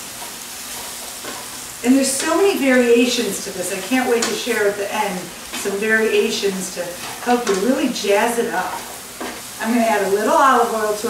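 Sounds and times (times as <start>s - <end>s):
vegetables sizzling in a frying pan: 0.0s - 11.0s.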